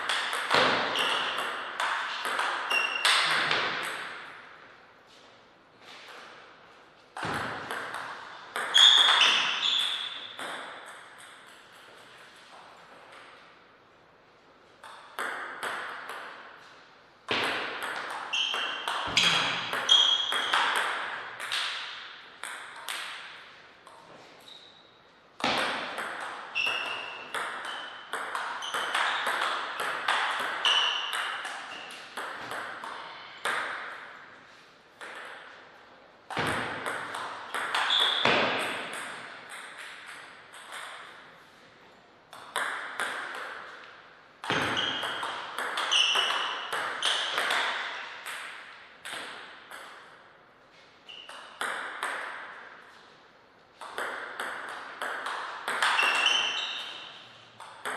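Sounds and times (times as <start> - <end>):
ball bouncing on table: 0.0 - 4.4, 7.2 - 12.0, 14.8 - 16.4, 17.3 - 24.1, 25.4 - 34.0, 35.0 - 35.6, 36.3 - 41.2, 42.3 - 50.1, 51.2 - 52.6, 53.8 - 57.9
table tennis ball hits: 0.0 - 4.6, 7.2 - 13.4, 14.8 - 24.6, 25.4 - 34.4, 35.0 - 35.6, 36.3 - 41.3, 42.3 - 50.2, 51.1 - 53.0, 53.7 - 57.9.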